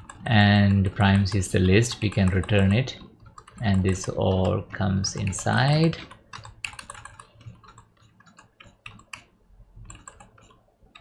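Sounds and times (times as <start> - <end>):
keyboard typing clicks: 0.0 - 11.0.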